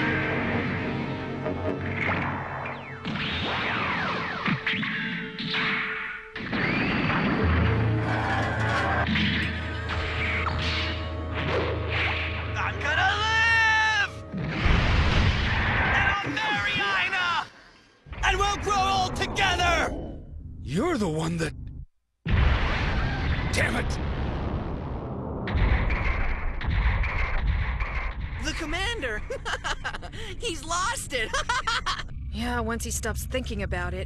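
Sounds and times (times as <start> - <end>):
dramatic background music: 0.0 - 17.1
man yelling: 12.9 - 14.2, 16.0 - 17.5.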